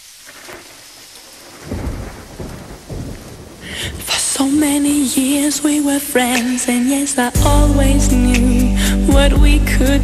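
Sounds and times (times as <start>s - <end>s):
steady rain: 0.0s - 10.0s
low thunder rolls: 0.3s - 6.4s
music: 5.0s - 10.0s.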